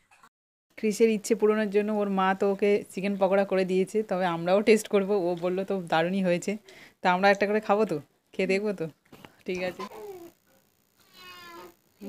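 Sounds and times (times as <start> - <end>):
short animal cries: 11.0 - 11.8.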